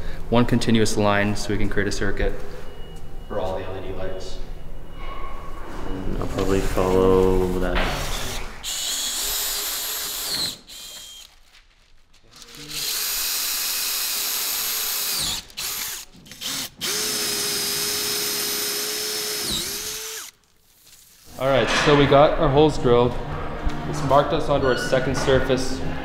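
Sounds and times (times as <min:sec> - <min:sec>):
cordless drill boring through wood: 0:08.0 - 0:11.3, 0:12.7 - 0:20.4.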